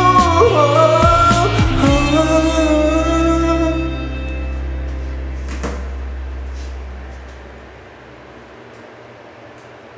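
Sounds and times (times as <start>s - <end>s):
low bass note of backing track: 1.1s - 8.6s.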